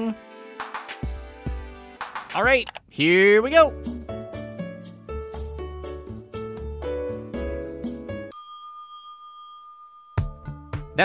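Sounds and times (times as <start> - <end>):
elevator bell ding: 8.3 - 10.5.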